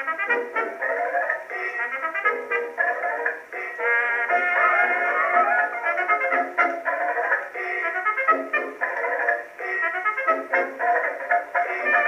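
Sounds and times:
jazzy dance-band record: 0.0s - 12.0s.

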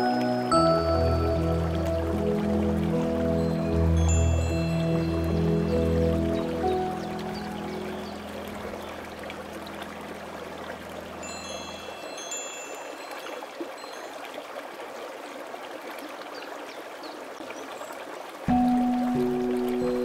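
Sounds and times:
running water: 0.0s - 20.0s.

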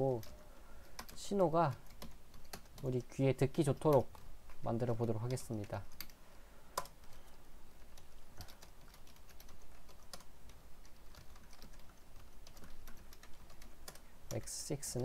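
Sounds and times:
computer keyboard typing: 0.0s - 6.2s, 6.8s - 15.0s.

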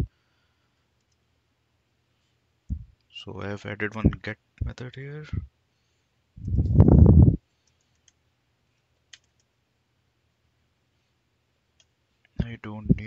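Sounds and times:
man speaking: 3.2s - 5.4s, 12.4s - 13.0s
low rumble: 6.4s - 7.4s
computer keyboard keystrokes: 9.1s - 9.5s.

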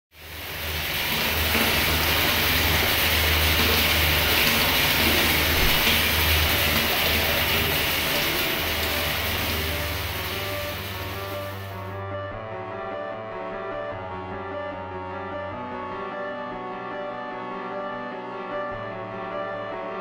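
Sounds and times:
rushing noise wash: 0.2s - 11.8s
low drone: 0.2s - 12.1s.

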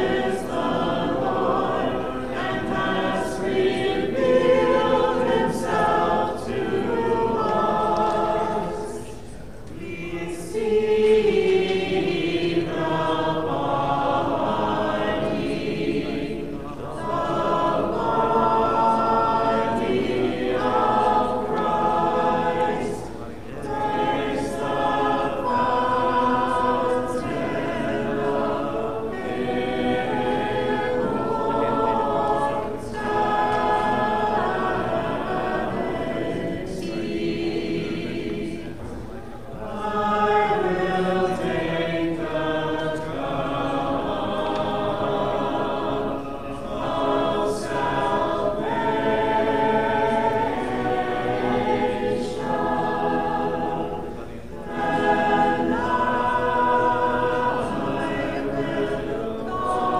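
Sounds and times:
choir chanting a cappella: 0.0s - 59.9s.

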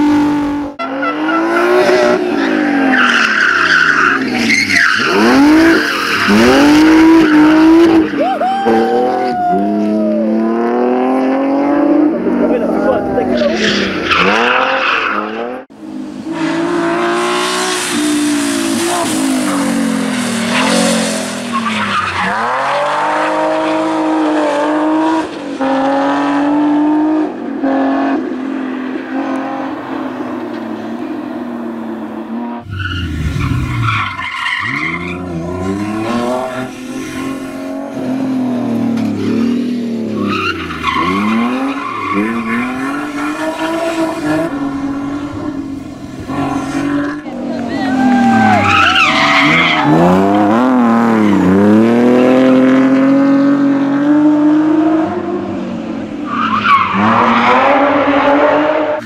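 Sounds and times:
tyres skidding and squealing: 0.0s - 59.0s
car engine revving hard: 5.0s - 8.1s, 48.3s - 55.4s.

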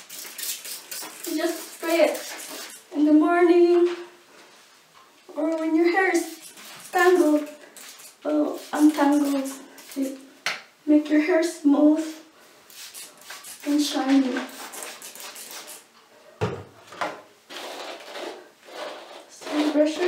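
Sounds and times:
hair and bottle handling: 0.0s - 2.8s, 5.5s - 10.2s
trigger spray bottle spritzing: 0.0s - 2.9s, 6.2s - 10.2s, 12.7s - 15.8s
woman's voice: 7.0s - 7.6s, 8.3s - 10.2s, 13.7s - 14.5s, 19.4s - 20.0s.

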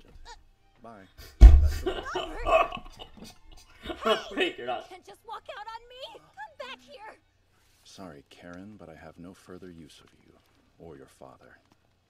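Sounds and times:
man laughing hard: 1.5s - 4.8s.

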